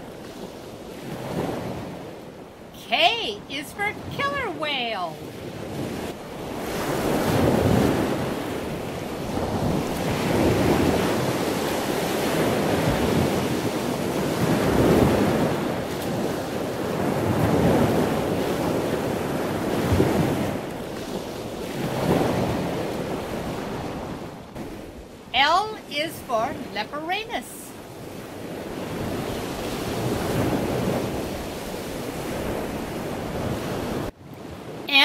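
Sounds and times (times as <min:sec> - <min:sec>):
wind noise on microphone: 0:05.4 - 0:25.2, 0:27.8 - 0:34.9.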